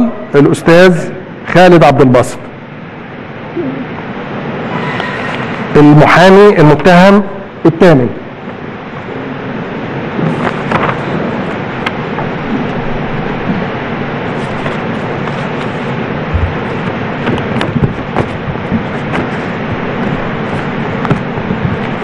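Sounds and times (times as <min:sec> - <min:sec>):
room hiss: 0:00.0 - 0:22.0.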